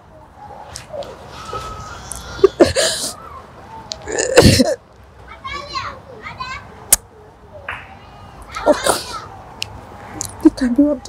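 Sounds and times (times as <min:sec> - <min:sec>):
woman sobbing and crying: 0:02.3 - 0:03.2.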